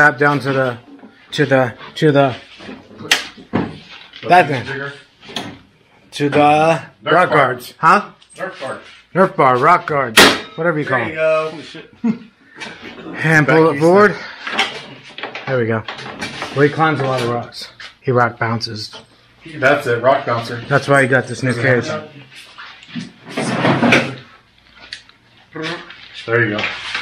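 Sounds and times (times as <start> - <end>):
man talking: 4.2 - 5.0, 13.1 - 14.3
sharp knock: 10.2 - 10.6.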